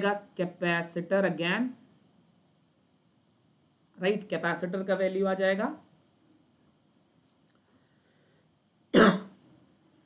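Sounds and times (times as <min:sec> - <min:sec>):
man coughing: 0:09.0 - 0:09.3.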